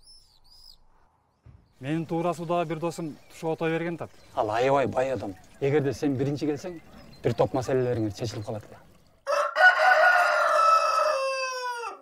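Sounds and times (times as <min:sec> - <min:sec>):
rooster crowing: 0:09.2 - 0:12.0.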